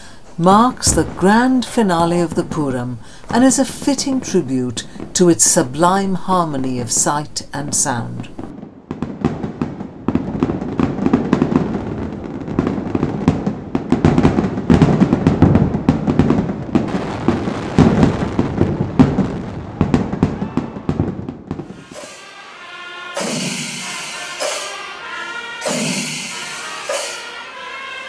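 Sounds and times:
rapid firecracker bangs: 0:00.2 - 0:06.0, 0:08.2 - 0:28.0
music: 0:21.6 - 0:28.0.

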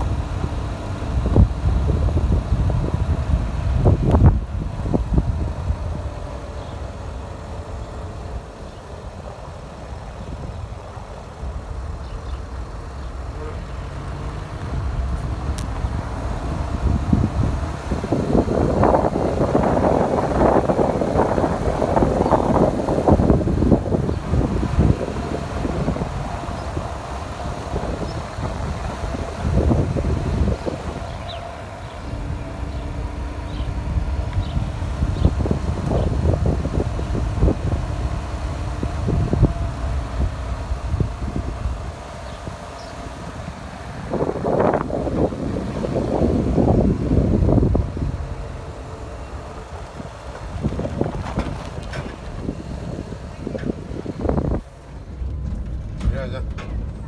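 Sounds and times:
car engine humming: 0:00.0 - 0:57.0
wind buffeting microphone: 0:00.0 - 0:57.0.

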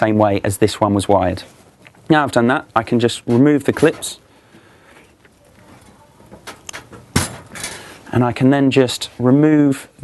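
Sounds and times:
handling connectors: 0:03.2 - 0:08.1.

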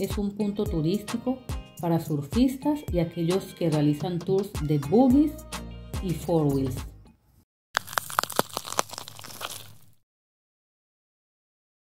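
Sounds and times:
sharp crackles and snaps: 0:07.8 - 0:10.0.

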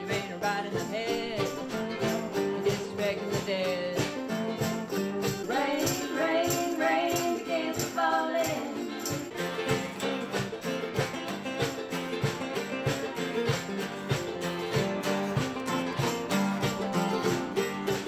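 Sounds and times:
person singing: 0:00.0 - 0:10.1
acoustic guitars strumming: 0:00.0 - 0:18.0.

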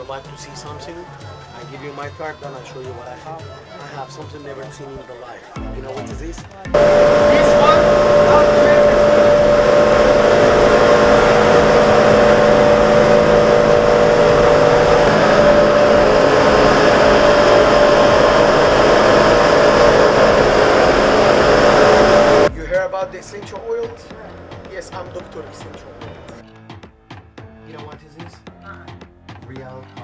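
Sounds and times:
electric spice mill grinding: 0:06.8 - 0:22.5.

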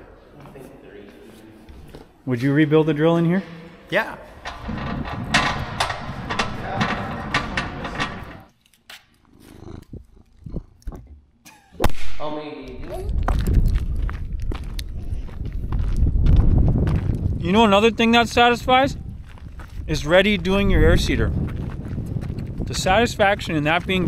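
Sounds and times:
pallet jack rattling on concrete: 0:04.4 - 0:08.5.

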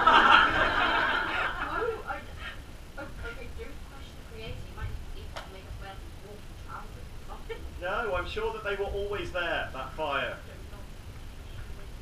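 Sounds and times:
audience laughing: 0:00.0 - 0:02.0.

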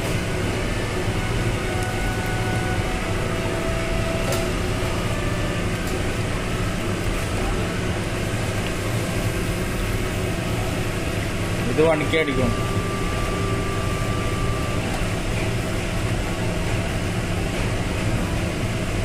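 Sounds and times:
machine hum with hiss: 0:00.0 - 0:19.0.

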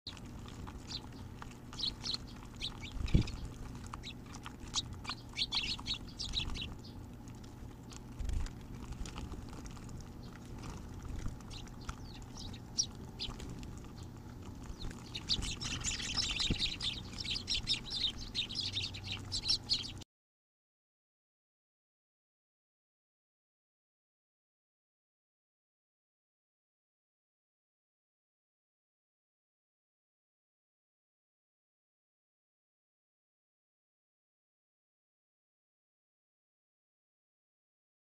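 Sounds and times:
sparrows chirping: 0:00.1 - 0:20.0.

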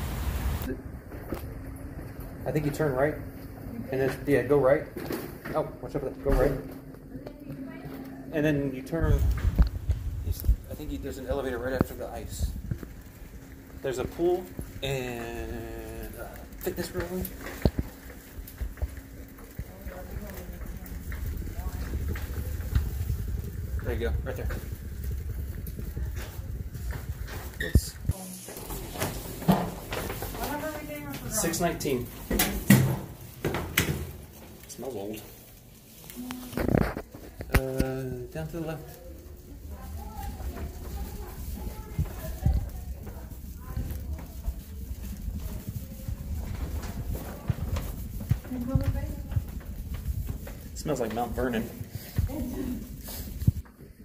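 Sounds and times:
footsteps in corridor: 0:01.0 - 0:54.0
bags rustling and knocking: 0:08.9 - 0:54.0
footsteps on carpet: 0:39.7 - 0:54.0.

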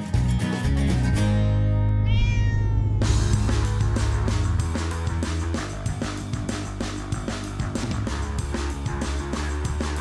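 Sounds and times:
cat meowing: 0:02.0 - 0:03.4.

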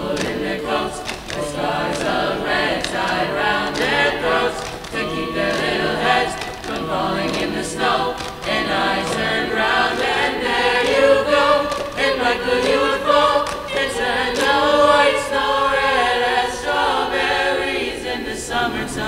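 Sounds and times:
choir singing in harmony: 0:00.0 - 0:19.0.

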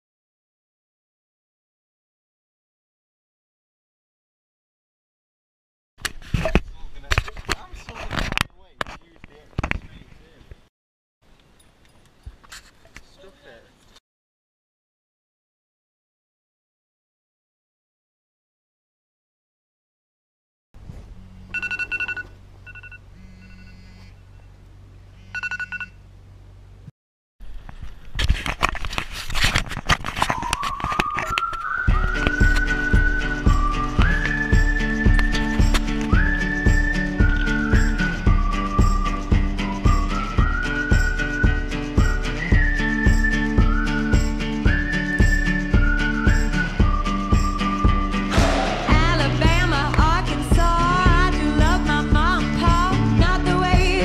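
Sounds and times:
knocks and scraping: 0:11.4 - 0:13.1, 0:27.6 - 0:32.8
thin whistled tone rising: 0:30.2 - 0:49.5.

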